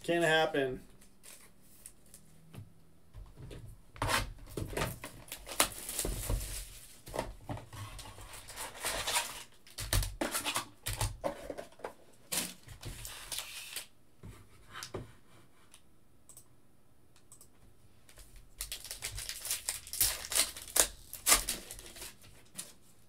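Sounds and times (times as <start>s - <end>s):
foil packs rustling: 4.8s - 7.1s, 8.0s - 11.2s, 12.3s - 13.9s, 18.6s - 22.8s
packaging tearing: 5.0s - 6.7s, 8.4s - 11.2s, 12.3s - 13.9s, 18.6s - 22.8s.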